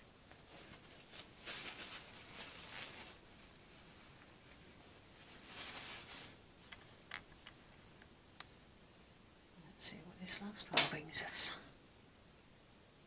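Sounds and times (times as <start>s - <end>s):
fingers rustling eggshell: 0.2s - 9.2s.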